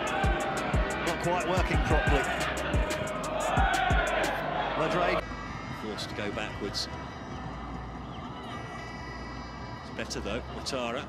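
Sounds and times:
stadium crowd ambience: 0.0 - 11.0.

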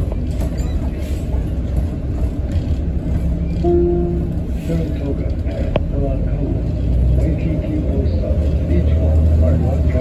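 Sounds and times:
bus engine and road rumble: 0.0 - 10.0.

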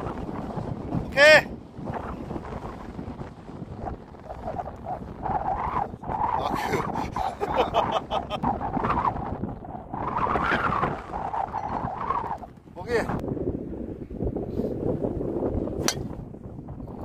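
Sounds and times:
wind on microphone: 0.0 - 17.0
golf ball struck by driver: 15.8 - 16.3.

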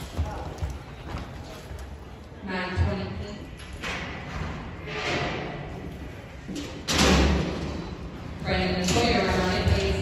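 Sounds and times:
metal gate slamming open: 6.8 - 7.8.

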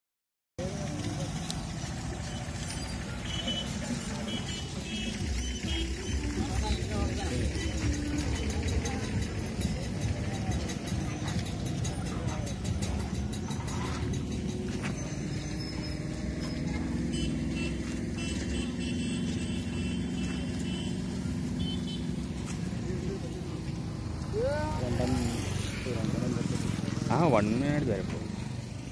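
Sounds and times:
faint voices: 0.6 - 18.2
vehicle engine and road noise: 0.6 - 28.9.

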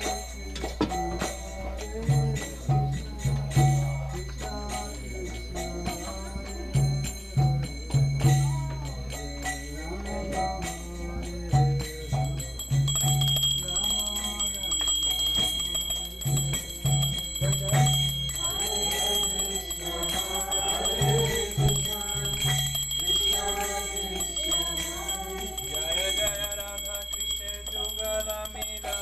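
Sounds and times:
bell ringing: 0.0 - 29.0
group chanting: 0.6 - 12.4, 13.7 - 26.6.

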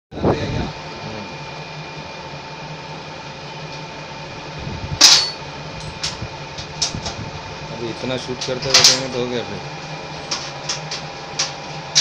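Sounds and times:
electrical hum: 0.1 - 12.0.

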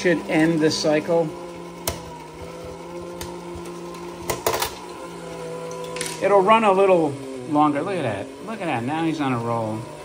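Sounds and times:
small electric motor humming: 0.0 - 10.0.

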